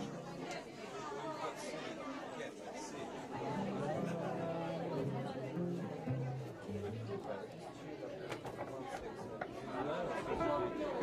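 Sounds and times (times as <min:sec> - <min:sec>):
people talking: 0:00.0 - 0:11.0
low acoustic guitar notes: 0:03.4 - 0:07.4.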